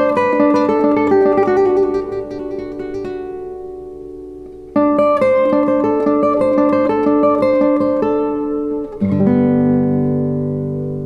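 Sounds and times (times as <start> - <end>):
classical guitar fingerstyle chord: 0.0 - 11.0.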